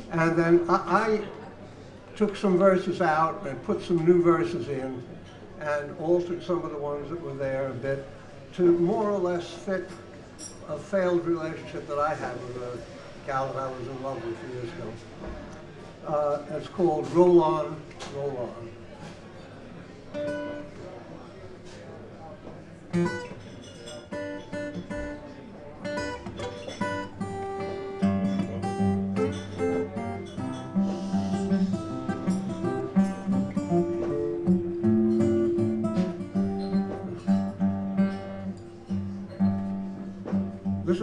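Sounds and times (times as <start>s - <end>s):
acoustic guitars being tuned: 20.1s - 21.0s, 21.6s - 41.0s.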